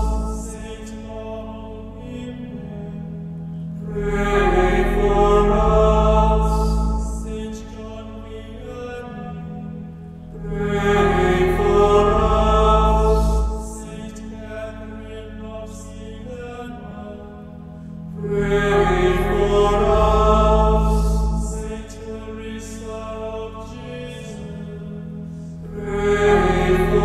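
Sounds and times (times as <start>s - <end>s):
slow chanted singing: 0.0s - 27.0s
sustained low drone: 0.0s - 27.0s.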